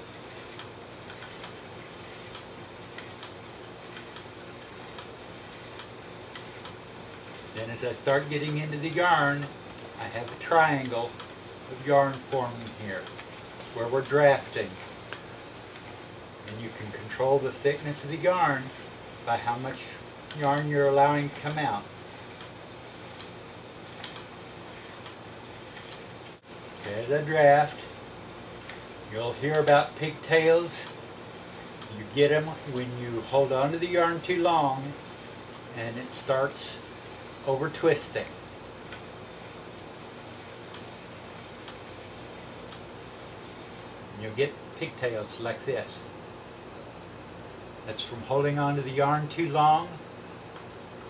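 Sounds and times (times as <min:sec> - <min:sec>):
spinning wheel hiss: 0:00.0 - 0:51.0
spinning wheel ticking: 0:00.1 - 0:23.4, 0:28.6 - 0:35.0.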